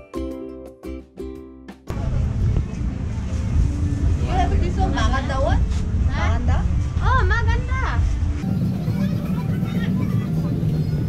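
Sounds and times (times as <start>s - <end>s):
faint voices: 1.9s - 11.0s
vehicle engine rumbling: 1.9s - 11.0s.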